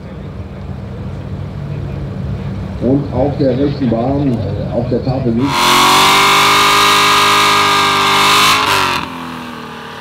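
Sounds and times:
distant race car engines rumbling: 0.0 - 10.0.

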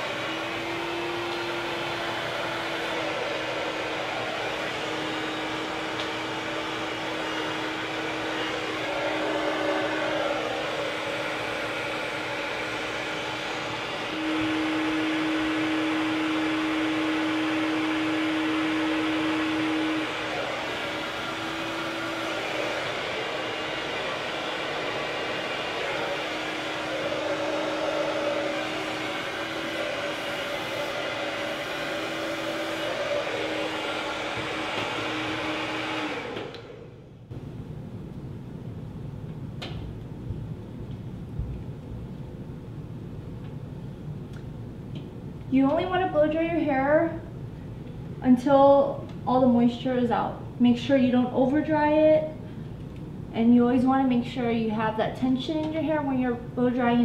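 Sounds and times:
hair dryer running: 0.0 - 37.5, 44.4 - 48.0.

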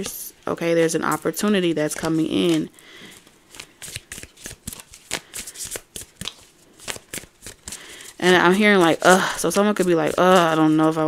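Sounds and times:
cards being shuffled by hand: 0.0 - 11.0.

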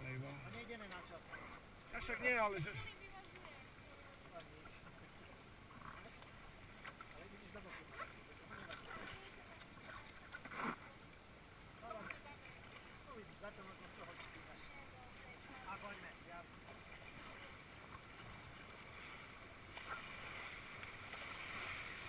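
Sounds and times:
water rushing along raft: 0.0 - 22.0
paddle strokes: 0.2 - 11.2, 11.8 - 22.0.

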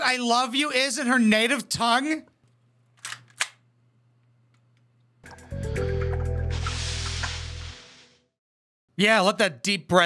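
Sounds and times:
handgun clicks: 3.0 - 3.6.

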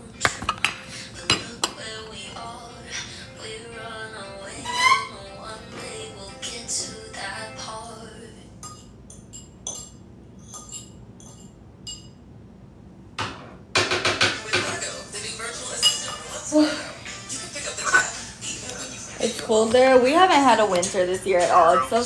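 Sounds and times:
dishes and cutlery clinking: 0.2 - 2.0, 8.6 - 12.2, 13.8 - 19.9.

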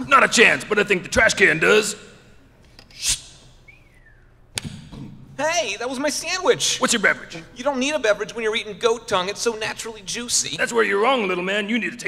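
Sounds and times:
faint falling whistle: 3.7 - 4.3.

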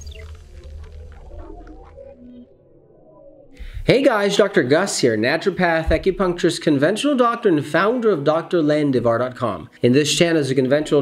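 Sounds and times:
low electronic drone: 0.0 - 6.4.

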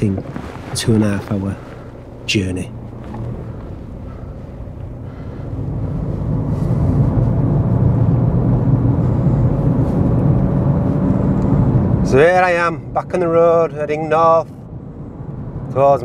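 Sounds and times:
car engine and road noise: 0.0 - 16.0.

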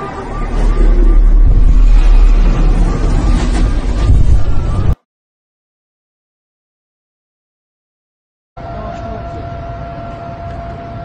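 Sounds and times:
electronic siren warbling: 0.0 - 5.0
low rumble: 0.0 - 5.0.

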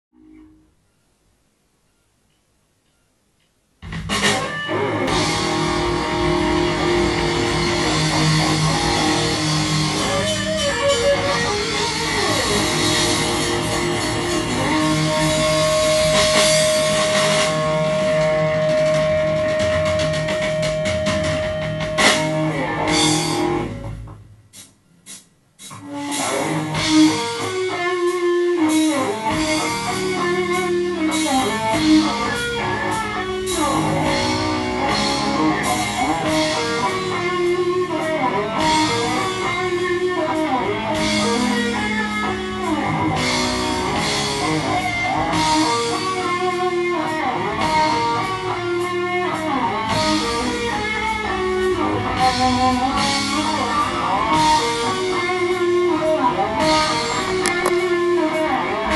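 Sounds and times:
heavy metal band playing live: 3.9 - 24.0, 25.8 - 58.9.

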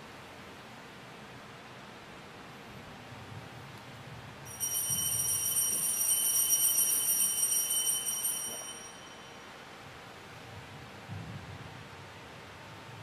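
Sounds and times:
altar bells ringing: 4.5 - 9.8.

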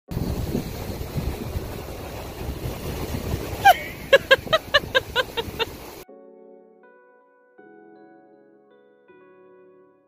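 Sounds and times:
breaking surf: 0.1 - 6.0
wind buffeting microphone: 0.1 - 6.0.

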